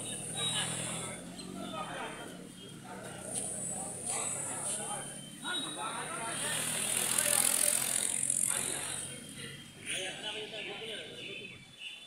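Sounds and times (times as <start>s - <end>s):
indistinct voices: 0.0s - 11.6s
rushing street noise: 0.0s - 12.0s.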